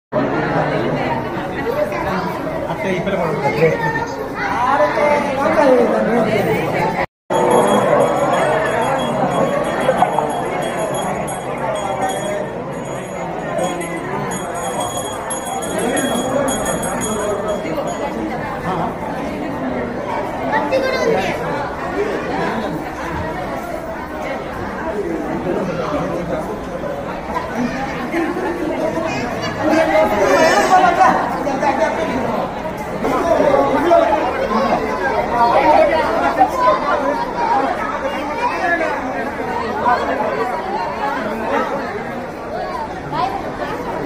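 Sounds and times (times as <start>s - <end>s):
crowd chatter: 0.1s - 44.0s.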